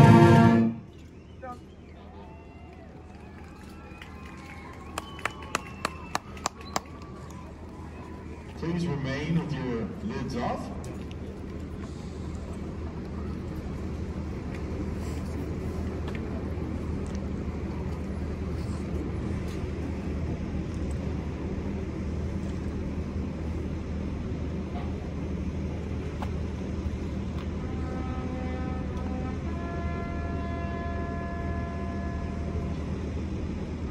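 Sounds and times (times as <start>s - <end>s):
faint outdoor crowd noise: 0.0s - 33.9s
vehicle engine idling: 4.2s - 29.2s.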